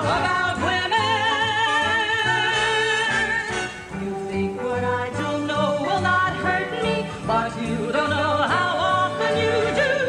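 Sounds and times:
women singing a show-tune duet: 0:00.0 - 0:10.0.

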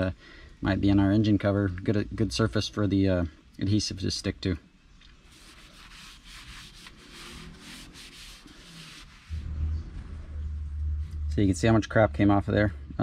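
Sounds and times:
towel scrubbing engine cover: 0:05.3 - 0:09.5
low rumble: 0:09.1 - 0:13.0.

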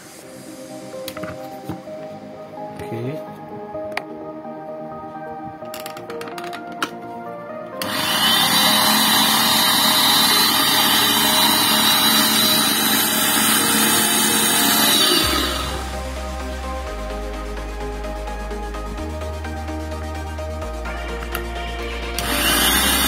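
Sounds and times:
background music: 0:00.0 - 0:23.0
blender motor running: 0:07.8 - 0:15.9, 0:22.2 - 0:23.0.

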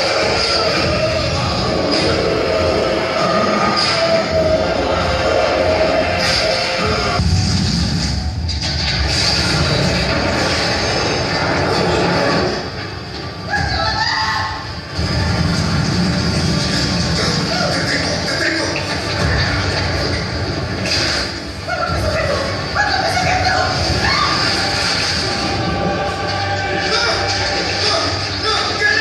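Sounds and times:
dense rumbling noise: 0:00.0 - 0:28.8
dramatic score music: 0:00.0 - 0:29.0.

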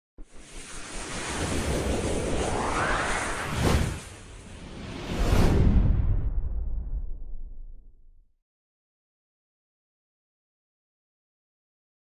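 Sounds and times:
rushing whoosh: 0:00.3 - 0:07.6.

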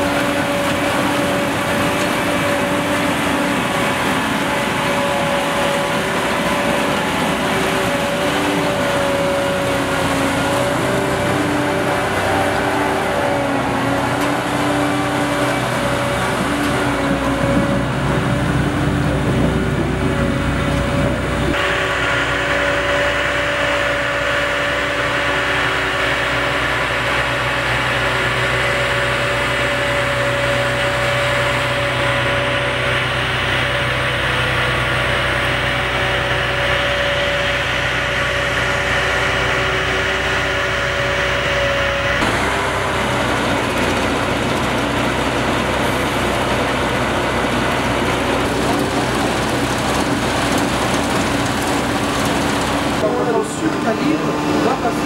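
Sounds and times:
harvester machinery drone: 0:00.0 - 0:55.0
held whine: 0:00.0 - 0:55.0.

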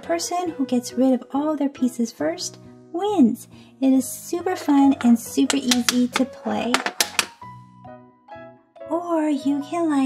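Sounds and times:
soft background music: 0:00.0 - 0:10.0
domino tiles clicking on table: 0:05.5 - 0:07.4.

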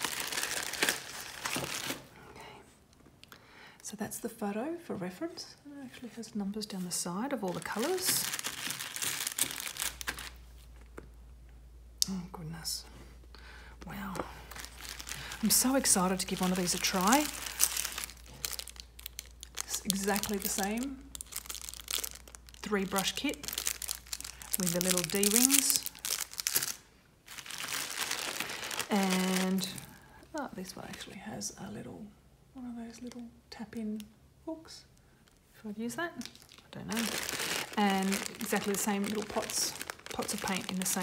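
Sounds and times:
plastic packaging crinkling: 0:00.0 - 0:02.1, 0:06.8 - 0:10.8, 0:13.9 - 0:30.0, 0:36.1 - 0:41.0.

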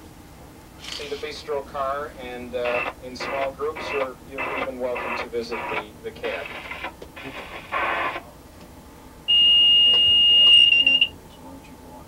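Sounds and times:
high-pitched electronic warning beep: 0:09.3 - 0:11.2.

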